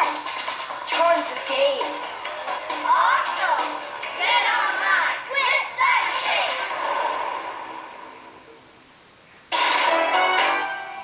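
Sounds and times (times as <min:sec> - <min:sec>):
cartoon soundtrack through laptop speakers: 0:00.0 - 0:11.0
faint hiss: 0:06.3 - 0:11.0.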